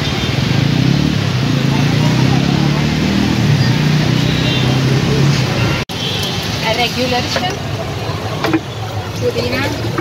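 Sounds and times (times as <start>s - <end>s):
people talking in background: 6.4s - 10.0s.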